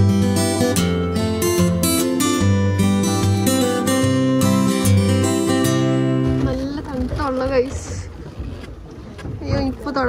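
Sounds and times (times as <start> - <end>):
wind rumbling on microphone: 6.0 - 10.0.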